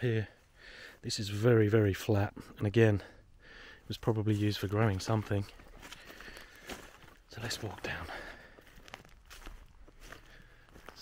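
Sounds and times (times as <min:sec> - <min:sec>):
footsteps through dry grass: 0:03.8 - 0:11.0.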